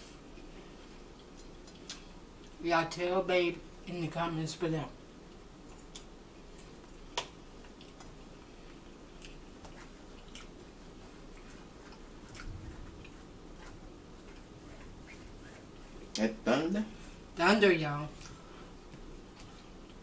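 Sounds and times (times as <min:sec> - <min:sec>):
chewing: 0:05.3 - 0:14.6
low rumble of thunder: 0:12.4 - 0:13.1.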